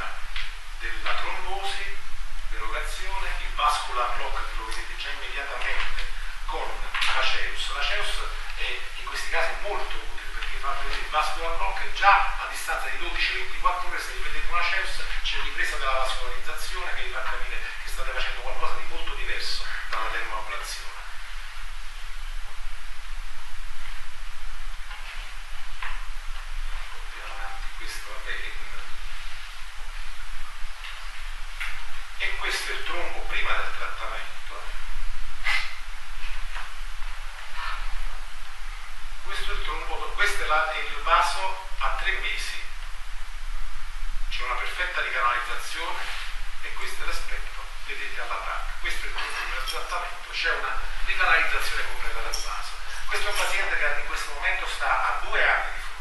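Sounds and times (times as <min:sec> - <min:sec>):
man lecturing: 0:00.0 - 0:21.2, 0:26.9 - 0:29.0, 0:32.2 - 0:34.8, 0:39.2 - 0:42.8, 0:44.3 - 0:56.0
low electrical hum: 0:00.0 - 0:56.0
steady hiss: 0:00.0 - 0:56.0.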